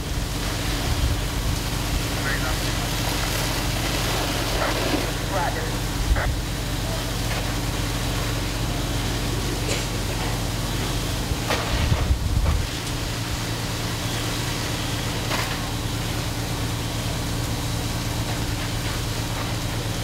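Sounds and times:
diesel engines droning: 0.0 - 20.0.

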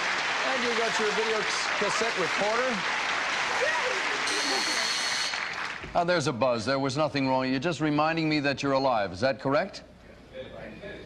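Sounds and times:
audience applause: 0.0 - 5.9
game show buzzer: 4.0 - 5.7.

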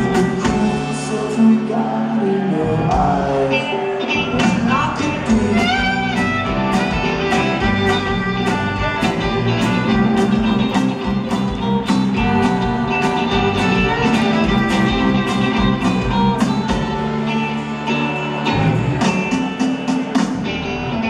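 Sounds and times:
folk-rock band playing: 0.0 - 21.0
violin melody: 5.3 - 19.0.

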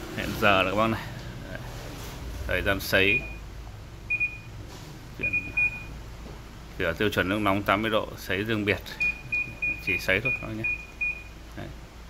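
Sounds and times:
short high beeps: 5.2 - 6.0.

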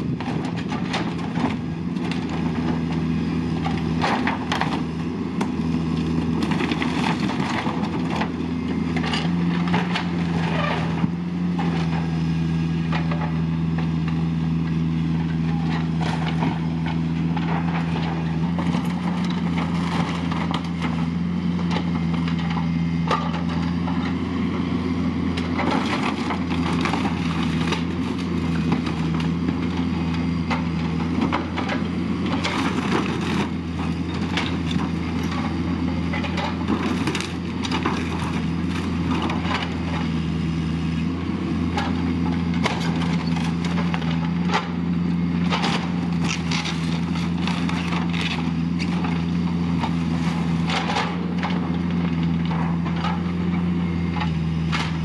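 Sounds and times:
diesel engine running: 0.0 - 55.0
wood cracking and splintering: 0.1 - 12.1, 15.3 - 24.1, 25.3 - 41.0, 41.6 - 44.8, 45.4 - 53.3.

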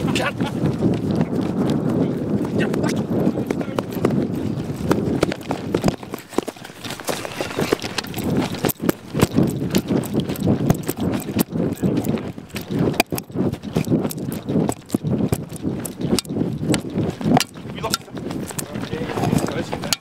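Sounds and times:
footsteps running on grass: 0.0 - 20.0.

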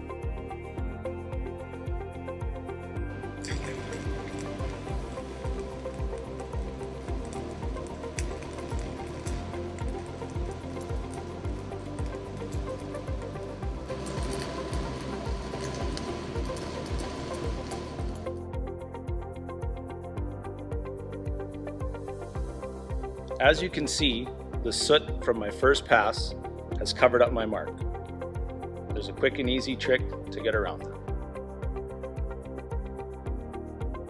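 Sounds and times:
background music with steady beat: 0.0 - 34.0
welding arc crackling and hissing: 3.0 - 18.4.

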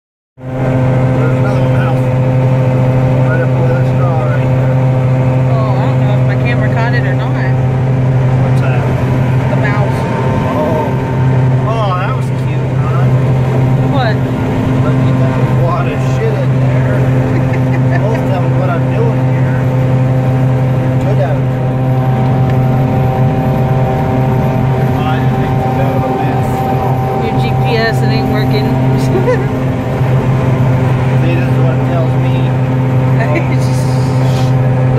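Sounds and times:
combine harvester drone: 0.4 - 34.9.

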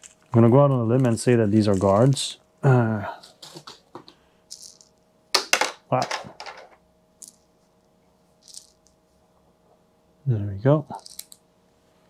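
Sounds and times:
tokens rustling: 0.0 - 2.4, 4.5 - 7.4, 8.4 - 8.9, 11.0 - 11.4
wooden tokens clattering in a hand: 4.5 - 7.4, 8.4 - 8.8, 11.0 - 11.4.

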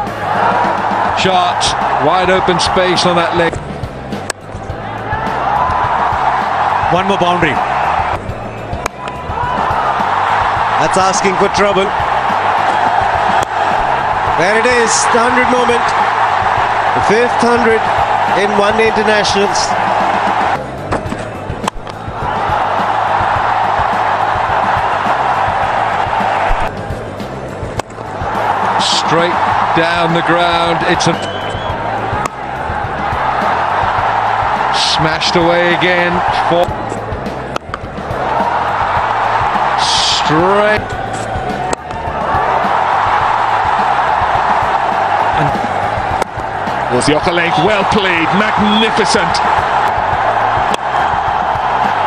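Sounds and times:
low background music beat: 0.0 - 52.0
stadium crowd noise: 0.0 - 52.0
cricket bat striking ball: 12.6 - 13.9.

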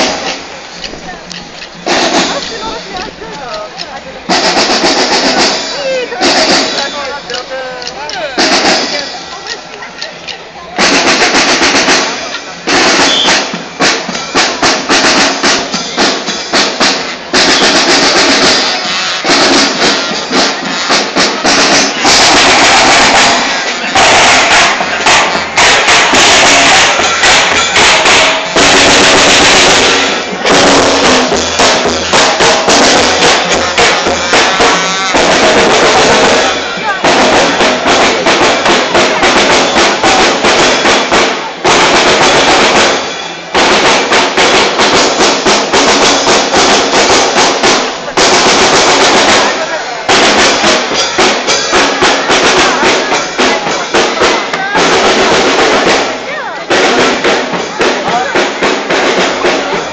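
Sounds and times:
crowd voices: 0.0 - 59.9
marching band drums: 0.0 - 59.9.

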